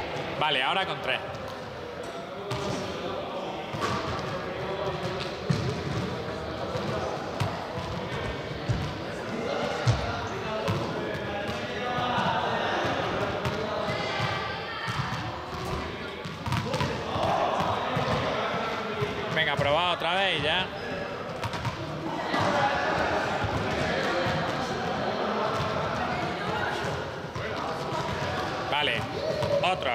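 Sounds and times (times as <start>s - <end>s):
balls bouncing on hall floor: 3.6s - 29.9s.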